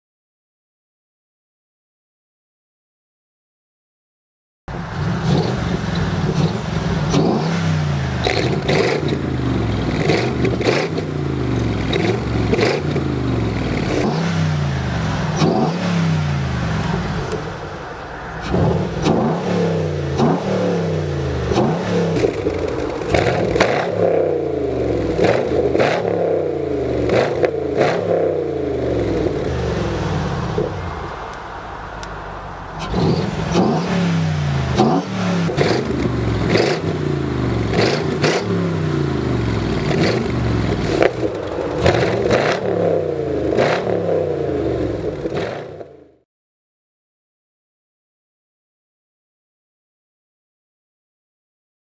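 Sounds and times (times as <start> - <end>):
car engine revving: 4.7 - 46.2.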